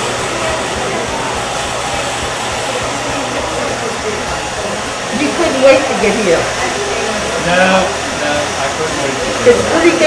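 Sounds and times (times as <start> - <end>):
hair dryer blowing: 0.0 - 10.0.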